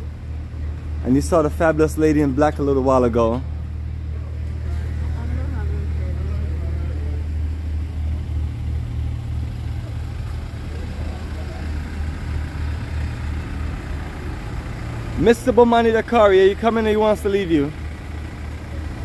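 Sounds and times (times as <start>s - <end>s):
van engine idling: 0.0s - 19.0s
faint voices: 2.4s - 7.6s, 9.4s - 12.4s.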